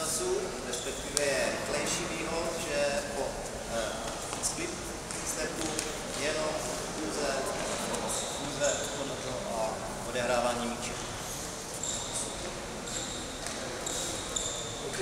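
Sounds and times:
man talking in echoing hall: 0:00.0 - 0:12.5, 0:13.7 - 0:15.0.

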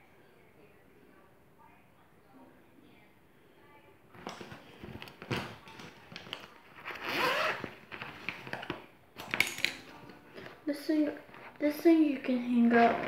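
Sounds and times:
plastic pouch rustling: 0:04.2 - 0:08.8
zipper rasp: 0:06.8 - 0:07.9.

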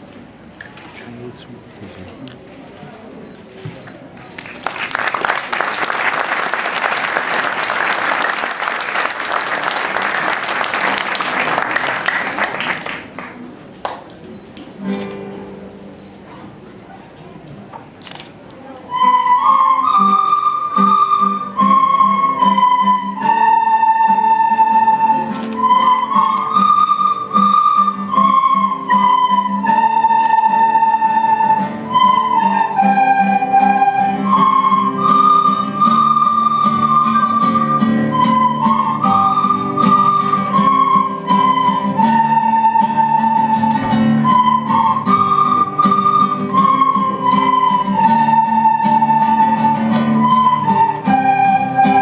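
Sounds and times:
children's recorder ensemble: 0:18.8 - 0:52.0.

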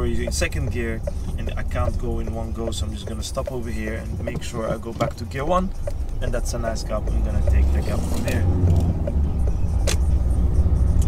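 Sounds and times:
car engine pulling away: 0:00.0 - 0:11.0.

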